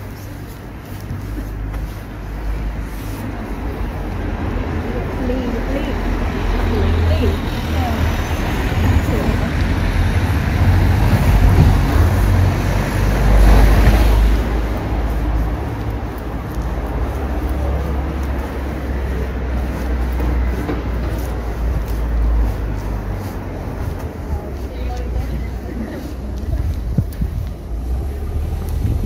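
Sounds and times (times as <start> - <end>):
vehicle passing on street: 0.0 - 29.0.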